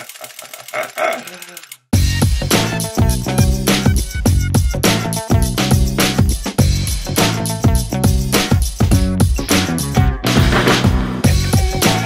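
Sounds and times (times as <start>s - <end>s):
man laughing: 0.0s - 1.8s
music: 2.0s - 12.0s.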